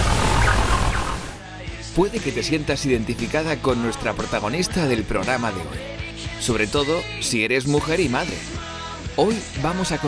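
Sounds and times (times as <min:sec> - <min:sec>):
television theme music with beat: 0:00.0 - 0:10.0.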